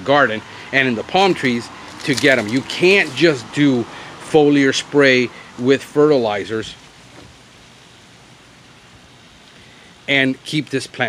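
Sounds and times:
low outdoor background hiss: 0:00.0 - 0:11.0.

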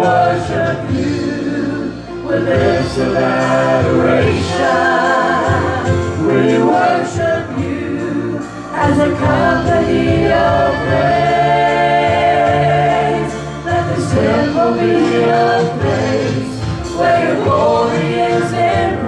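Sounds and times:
gospel singing through pa: 0:00.0 - 0:19.0
piano accompaniment: 0:00.0 - 0:19.0.

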